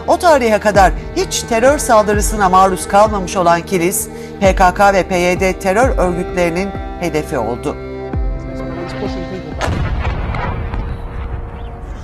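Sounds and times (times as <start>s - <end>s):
heavy rumbling: 0.0s - 7.3s, 8.2s - 12.0s
rocket exploding: 9.6s - 12.0s.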